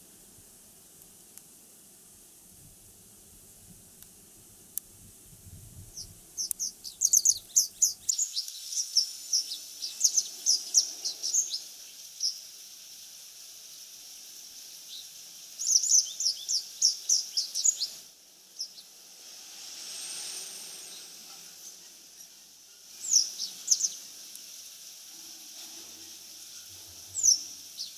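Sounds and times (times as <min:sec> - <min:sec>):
wagtail chirping song: 0:05.9 - 0:12.5, 0:14.9 - 0:19.0, 0:20.9 - 0:24.6, 0:26.9 - 0:27.9.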